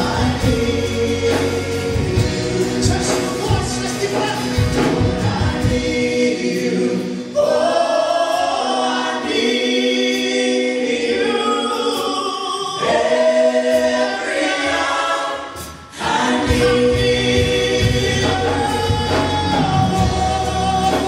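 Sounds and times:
group singing gospel song: 0.0s - 21.0s
worship band playing: 0.0s - 21.0s.

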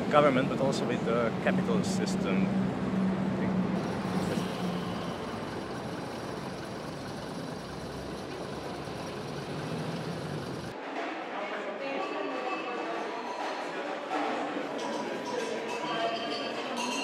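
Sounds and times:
traffic noise: 0.0s - 10.8s
tram passing: 1.0s - 10.7s
low hum: 3.7s - 10.7s.

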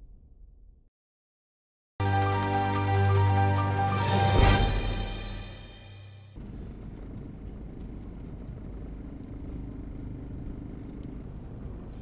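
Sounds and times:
faint steady hum: 6.4s - 12.0s
low outdoor rumble: 6.4s - 12.0s.

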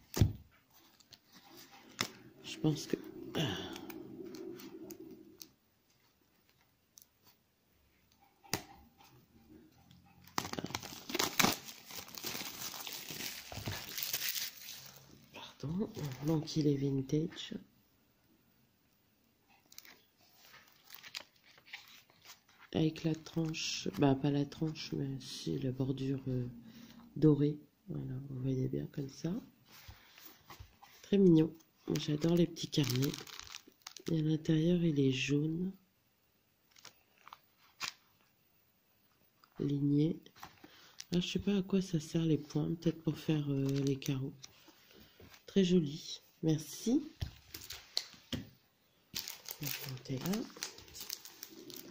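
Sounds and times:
plastic wrapping snapping: 10.2s - 15.0s, 20.6s - 22.4s, 31.9s - 34.1s, 43.6s - 44.2s, 49.1s - 51.9s
plastic wrapping crackling: 10.2s - 16.8s, 19.6s - 24.9s, 31.0s - 34.4s, 36.7s - 38.0s, 43.2s - 44.7s, 47.2s - 48.2s, 49.1s - 51.9s
notebook pages rustling: 19.8s - 24.8s, 31.9s - 34.1s, 43.5s - 45.5s, 49.1s - 51.9s.

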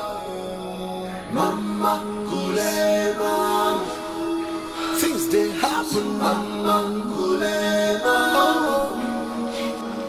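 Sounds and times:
chant-like vocal film score: 0.0s - 10.0s.

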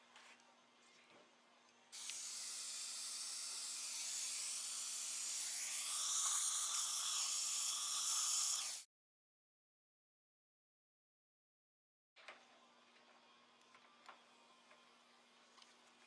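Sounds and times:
dental suction hissing: 2.0s - 8.9s.

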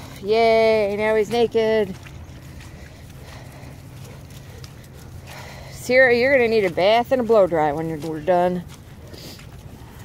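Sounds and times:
footsteps on wet grass: 0.0s - 10.0s.

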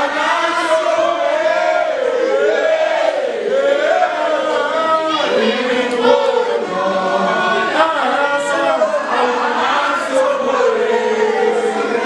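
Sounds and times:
group of voices singing: 0.0s - 12.0s.

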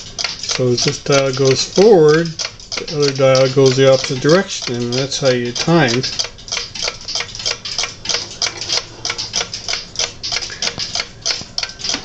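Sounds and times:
clock ticking: 0.0s - 12.0s.

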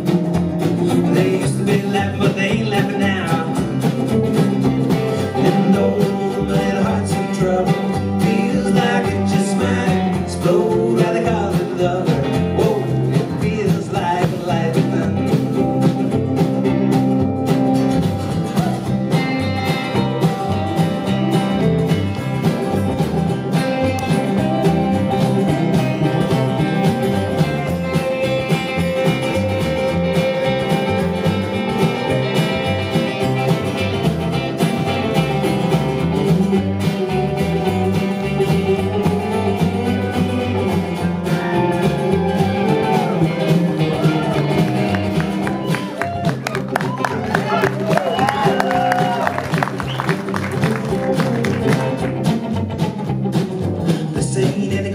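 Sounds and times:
live band country-folk music: 0.0s - 54.9s
two guitars playing: 0.0s - 54.9s.

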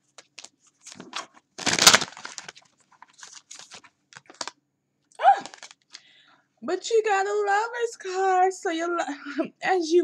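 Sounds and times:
cards being shuffled: 0.0s - 4.5s, 5.4s - 6.0s.

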